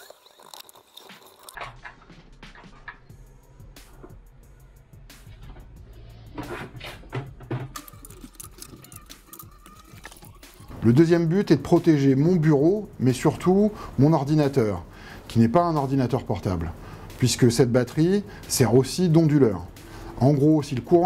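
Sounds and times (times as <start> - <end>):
soft background music: 0.4 - 21.0.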